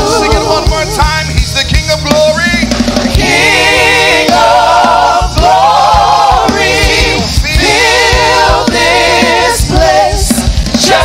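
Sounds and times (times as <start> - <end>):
group singing in harmony: 0.0 - 1.0, 2.8 - 11.0
instrumental backing with drums: 0.0 - 11.0.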